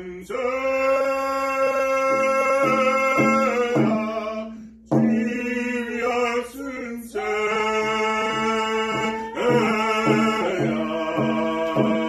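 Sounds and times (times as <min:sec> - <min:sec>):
man and woman chanting: 0:00.0 - 0:12.0
frame drum beating: 0:02.0 - 0:06.0, 0:08.1 - 0:12.0.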